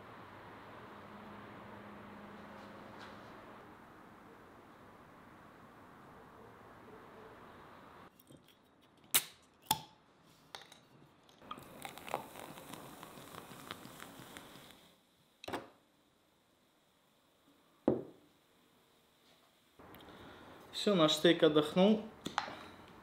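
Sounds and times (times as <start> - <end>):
fizzy drink pouring into cup: 11.4 - 14.9
objects knocking on wooden table: 17.9 - 18.2.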